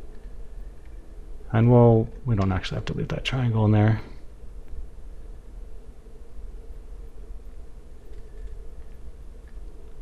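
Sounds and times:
faint clicks: 0.0 - 1.0, 4.6 - 4.8, 6.7 - 10.0
low hum and hiss: 0.0 - 10.0.

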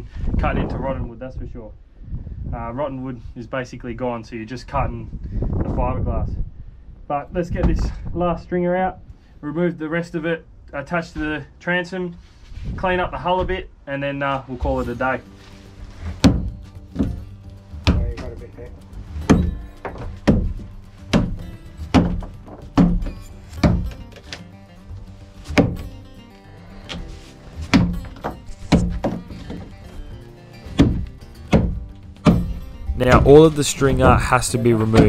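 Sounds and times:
background music: 14.5 - 35.0
steel bar thudding into wood: 16.2 - 17.2, 19.2 - 24.0, 25.5 - 25.8, 30.7 - 32.6.

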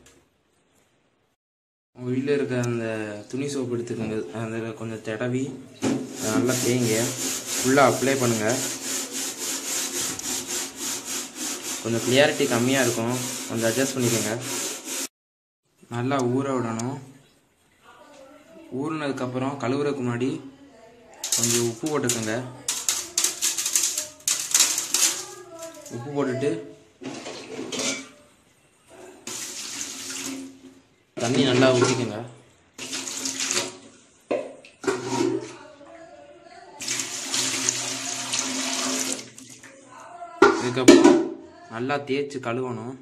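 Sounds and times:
tap water running: 5.8 - 15.1, 21.2 - 26.0, 29.2 - 35.4, 36.8 - 39.8
scrubbing glass by hand: 6.0 - 15.1.

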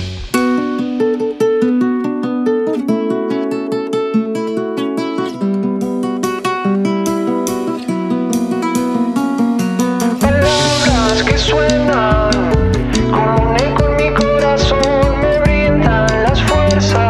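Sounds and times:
acoustic guitar picking: 0.0 - 17.0.

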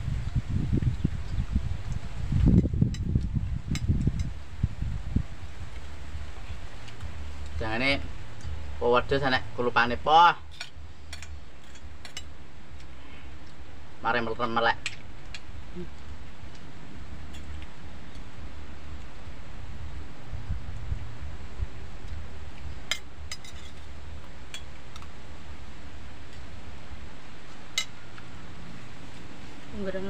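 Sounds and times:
steady low rumble: 0.0 - 30.0
spoons clinking on plates: 22.9 - 23.8.

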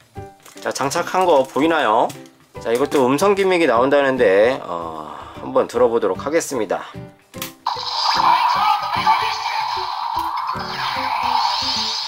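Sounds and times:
falling electronic sweep: 7.7 - 12.0.

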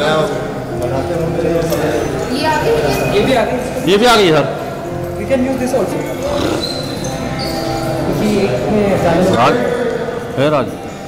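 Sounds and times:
background music: 0.0 - 11.0
indistinct voices: 0.0 - 11.0.

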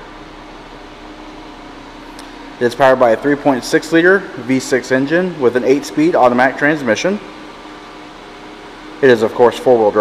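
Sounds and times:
ventilation hiss and hum: 0.0 - 10.0
person speaking: 2.6 - 7.3.

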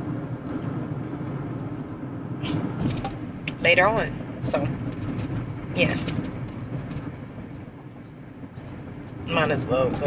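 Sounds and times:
road and engine rumble: 0.0 - 10.0.

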